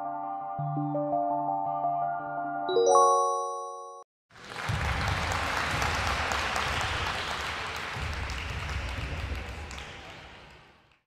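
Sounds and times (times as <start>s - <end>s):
crowd applause: 4.3s - 11.0s.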